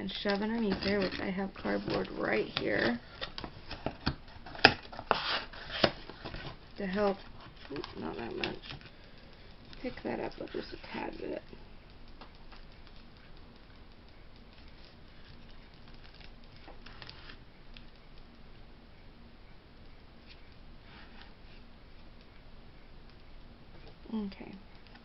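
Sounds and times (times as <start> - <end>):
low room hiss: 0.0 - 25.0
ceramic figurine scraping on cardboard: 0.6 - 3.0.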